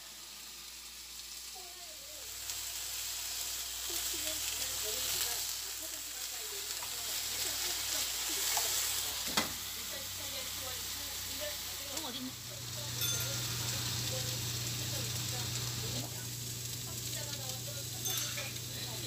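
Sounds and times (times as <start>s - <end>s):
pork sizzling in a pan: 0.0s - 19.0s.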